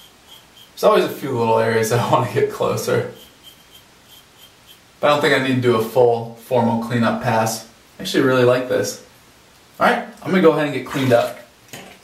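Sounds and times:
fingertips scratching stubble: 2.9 - 4.9.

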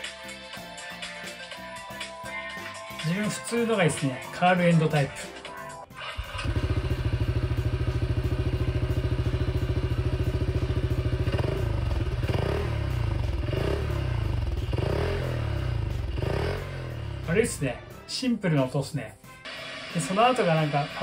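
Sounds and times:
scooter engine idling: 6.0 - 17.4.

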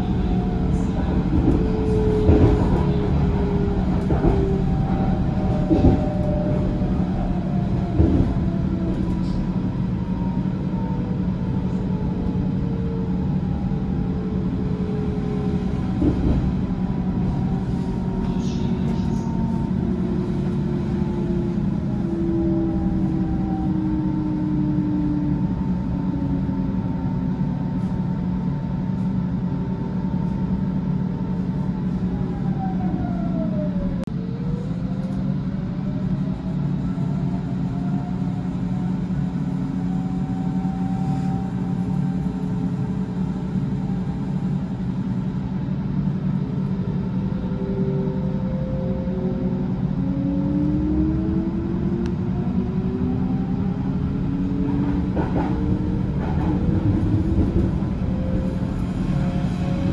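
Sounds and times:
train wheels rumbling: 0.0 - 59.9.

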